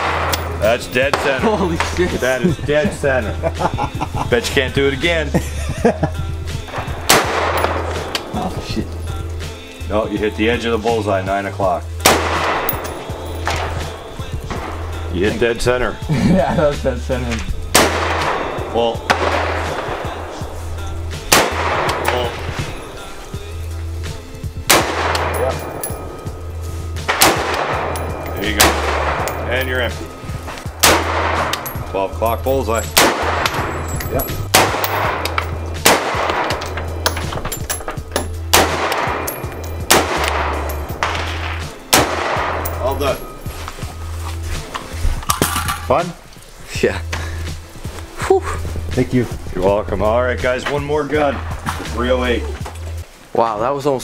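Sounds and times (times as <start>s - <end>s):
background music with bass: 0.0s - 54.0s
rifle shots: 6.8s - 8.3s, 12.0s - 14.0s, 17.8s - 20.0s, 21.3s - 22.4s, 24.7s - 25.8s, 27.0s - 29.6s, 30.8s - 31.8s, 32.8s - 33.8s, 34.5s - 37.2s, 38.5s - 42.8s
metallic rifle clicks: 25.0s - 26.2s.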